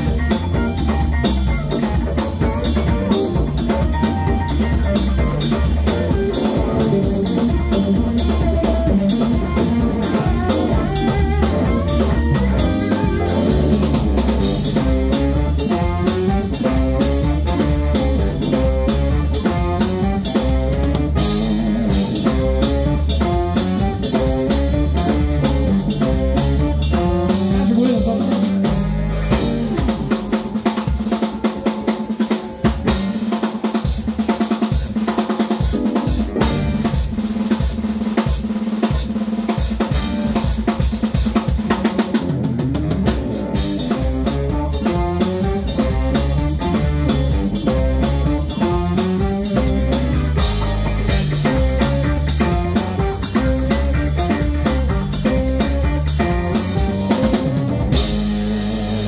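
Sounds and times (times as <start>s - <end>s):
drum kit: 0.0s - 59.0s
funk band playing: 0.0s - 59.0s.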